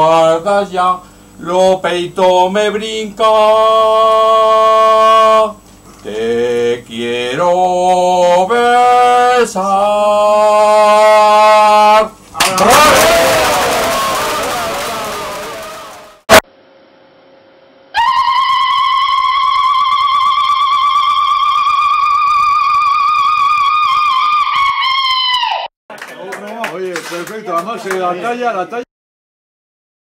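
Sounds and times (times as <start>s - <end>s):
burst of voices: 12.4s - 16.4s.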